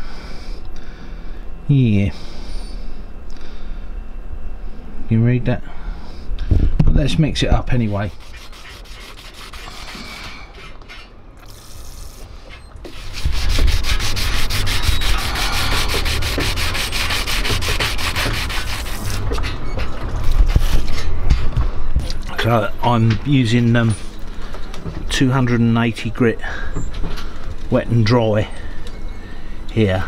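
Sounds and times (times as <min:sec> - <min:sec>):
sandpaper rasping: 0:07.8 - 0:10.8, 0:12.9 - 0:19.6.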